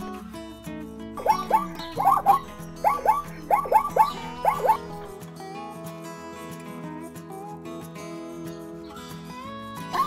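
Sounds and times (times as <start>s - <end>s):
guitar music: 0.0s - 10.0s
zebra barking yelps: 1.2s - 5.1s.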